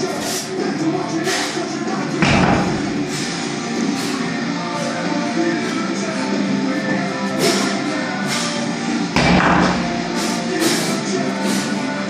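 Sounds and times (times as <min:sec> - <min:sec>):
rock guitar music: 0:02.0 - 0:10.6
heavy dumbbell thud on mat: 0:02.2 - 0:03.1.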